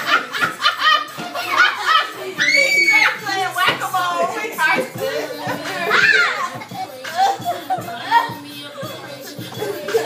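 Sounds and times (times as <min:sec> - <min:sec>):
children shouting and squealing: 0:00.8 - 0:10.0.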